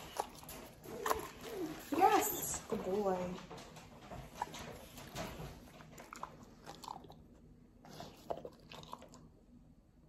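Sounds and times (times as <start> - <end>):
dog chewing crunches: 0.0 - 9.3.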